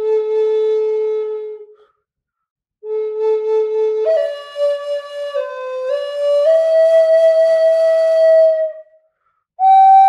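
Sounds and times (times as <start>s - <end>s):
flute playing held notes: 2.8s - 8.8s, 9.6s - 10.0s.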